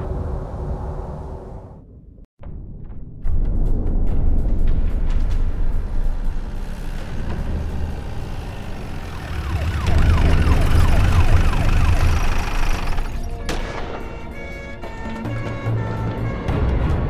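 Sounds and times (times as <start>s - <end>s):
deep steady rumble: 0.0s - 2.3s, 4.3s - 13.4s
siren: 6.6s - 15.2s.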